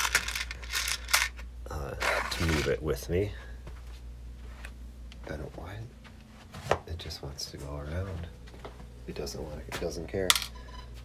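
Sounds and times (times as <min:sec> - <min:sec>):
plastic pieces clattering: 0:00.0 - 0:01.4.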